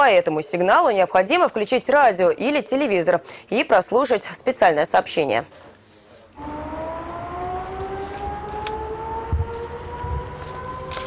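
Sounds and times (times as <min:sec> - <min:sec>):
low thumps: 0:06.4 - 0:10.7
electric siren wailing: 0:06.4 - 0:11.0.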